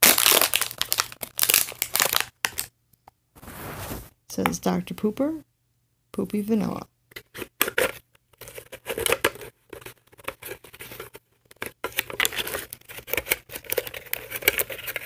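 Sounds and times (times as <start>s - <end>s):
plastic and paper crackling: 0.0s - 2.7s, 7.6s - 15.0s.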